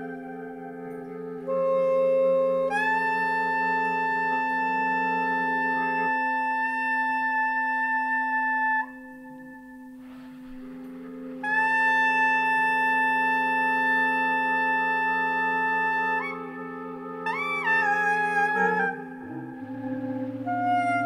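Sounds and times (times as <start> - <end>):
soprano saxophone long notes: 0.0 - 21.0
low drone: 9.1 - 21.0.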